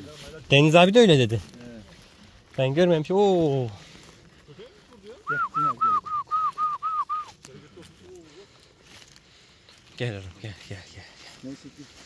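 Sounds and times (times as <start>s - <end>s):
person whistling to a dog: 5.3s - 7.3s.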